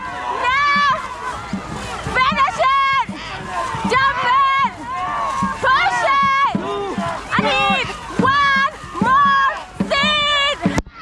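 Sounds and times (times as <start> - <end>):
crew shouting rhythmic calls: 0.0 - 10.8
paddles splashing: 0.0 - 11.0
water rushing: 0.0 - 11.0.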